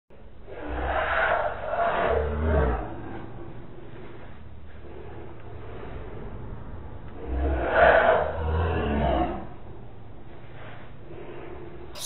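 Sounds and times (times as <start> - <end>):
low steady noise: 0.1 - 12.0
rumbling swells of sound: 0.1 - 12.0.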